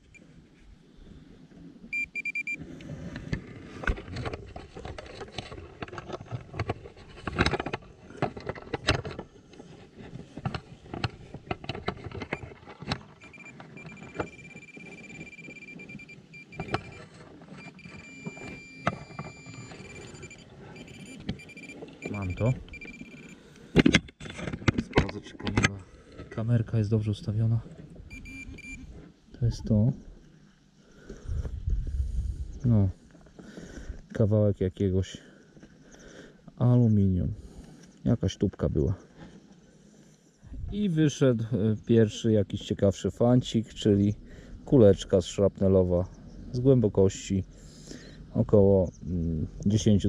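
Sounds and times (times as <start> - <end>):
metal detector tone: 1.9 - 2.6, 12.0 - 23.5, 28.1 - 29.0
earth and grass rustling: 2.6 - 34.2.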